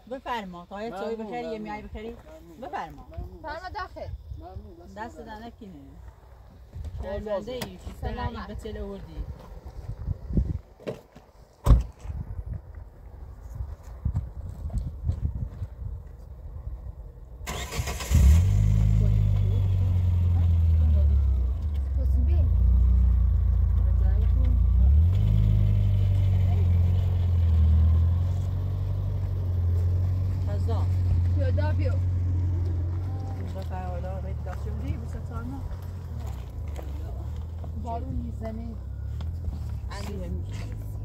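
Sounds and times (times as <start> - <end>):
car engine cranking and idling: 17.3 - 41.0.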